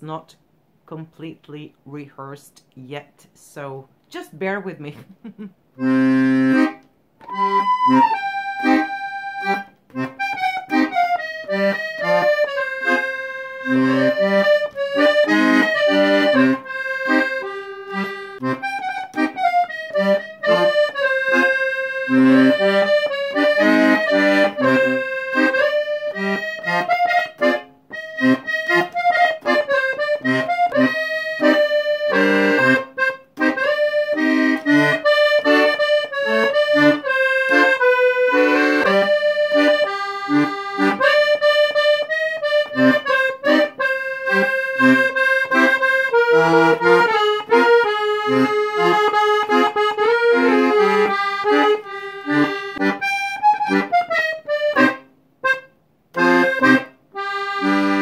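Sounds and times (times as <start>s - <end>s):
button accordion playing: 5.8s - 58.0s.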